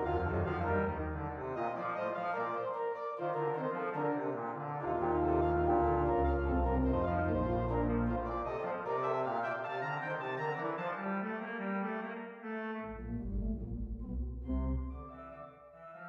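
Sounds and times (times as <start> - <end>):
church organ playing: 0.0 - 2.7, 4.3 - 11.0, 14.2 - 15.6.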